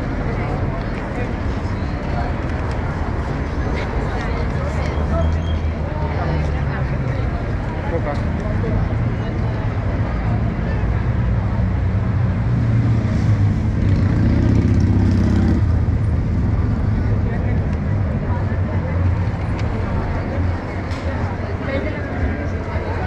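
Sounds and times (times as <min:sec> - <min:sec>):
people chatting: 0:00.0 - 0:11.8, 0:16.5 - 0:23.0
traffic rumble: 0:00.0 - 0:23.0
vehicle engine: 0:00.0 - 0:23.0.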